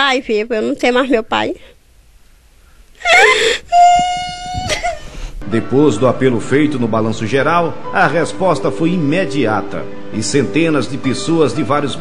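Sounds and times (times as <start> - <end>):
woman sobbing and wailing: 3.0 - 5.4.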